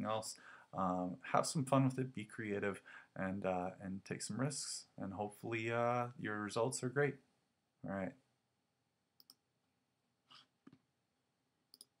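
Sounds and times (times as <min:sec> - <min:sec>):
computer mouse clicks: 0:09.2 - 0:09.4, 0:11.7 - 0:12.0.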